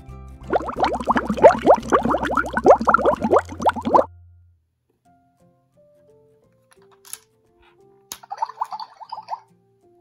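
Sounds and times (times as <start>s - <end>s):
cartoon bubbling blooping: 0.4s - 4.1s.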